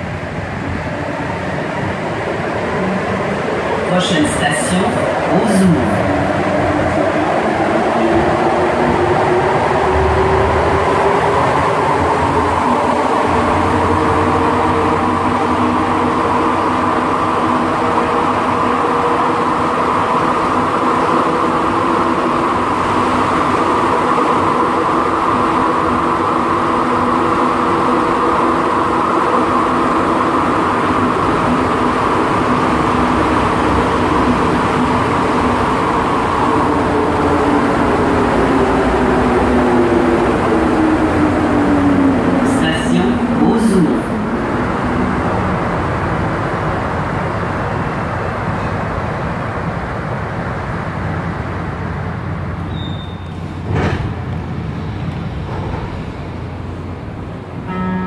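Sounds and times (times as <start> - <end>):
metro train running: 0.0 - 58.0.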